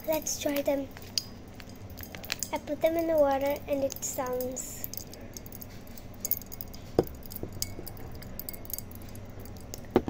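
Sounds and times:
popping candy crackling in water: 0:00.0 - 0:10.0.

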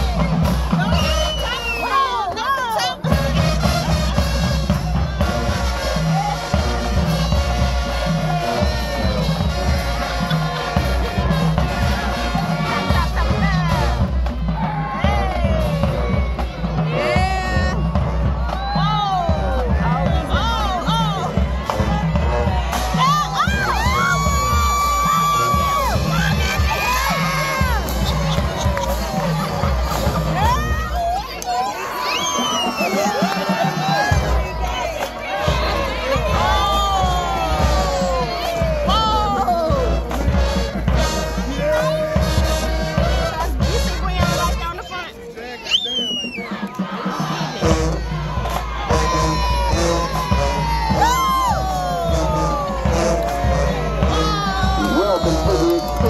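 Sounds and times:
crowd cheering and whooping: 0:00.0 - 0:40.4, 0:41.0 - 0:43.7, 0:44.7 - 0:56.0
marching band playing: 0:00.0 - 0:56.0.

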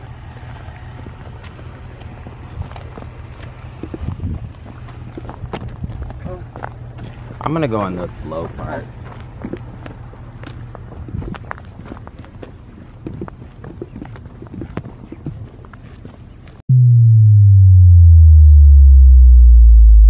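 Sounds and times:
footsteps on dirt track: 0:00.0 - 0:16.6
deep electronic tone gliding down: 0:16.7 - 0:20.0
low steady rumble: 0:16.7 - 0:20.0.

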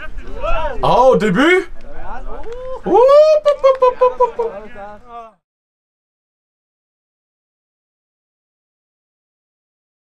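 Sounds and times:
person shouting: 0:02.8 - 0:03.7.

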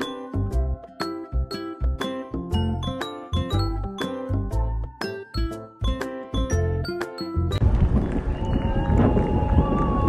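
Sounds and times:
distant crowd clapping and cheering: 0:07.6 - 0:10.0.

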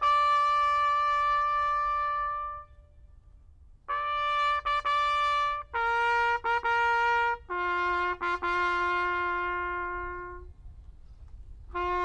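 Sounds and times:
bugle held note: 0:00.0 - 0:03.2, 0:03.9 - 0:10.5, 0:11.7 - 0:12.0.

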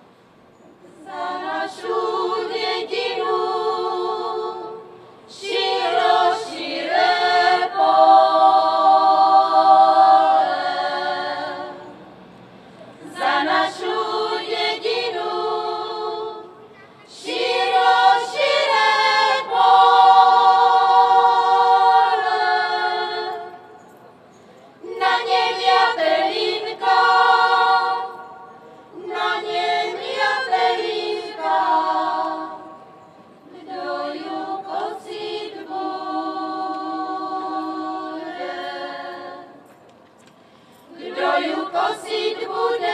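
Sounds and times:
women's choir singing a cappella: 0:00.9 - 0:12.1, 0:13.0 - 0:23.8, 0:24.8 - 0:39.8, 0:40.8 - 0:42.9.

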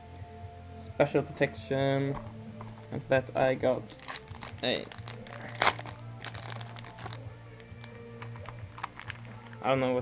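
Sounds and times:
plastic sleeve crinkling: 0:03.9 - 0:09.6.

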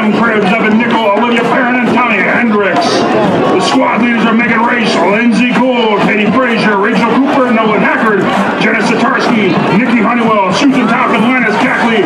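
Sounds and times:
man announcing over public address: 0:00.0 - 0:12.0.

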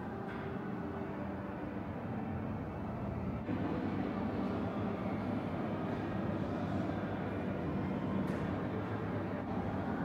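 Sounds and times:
low indoor room rumble: 0:00.0 - 0:10.0.

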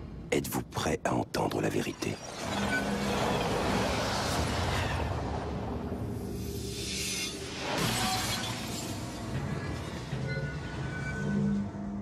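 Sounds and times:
dramatic background music: 0:02.2 - 0:12.0.

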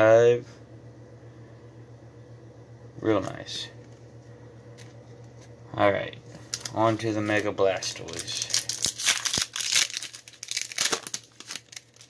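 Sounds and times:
foil wrapper tearing and crinkling: 0:06.5 - 0:12.0.

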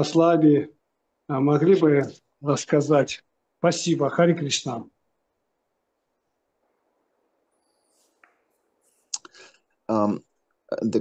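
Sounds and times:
man speaking: 0:00.0 - 0:04.9, 0:09.9 - 0:11.0.

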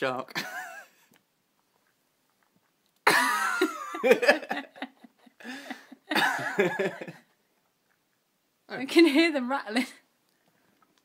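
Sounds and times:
person laughing hard: 0:03.1 - 0:07.2.

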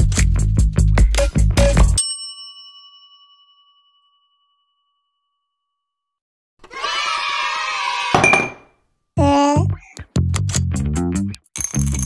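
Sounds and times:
bell-like ding: 0:02.0 - 0:06.0.

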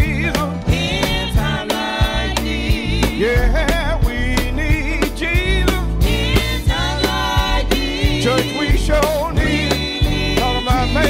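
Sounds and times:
gospel group singing with band: 0:00.0 - 0:11.0.

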